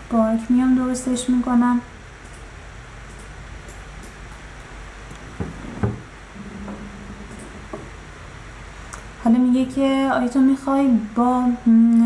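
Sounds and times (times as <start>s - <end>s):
faint low hum: 0.0s - 12.0s
microphone hiss: 0.0s - 12.0s.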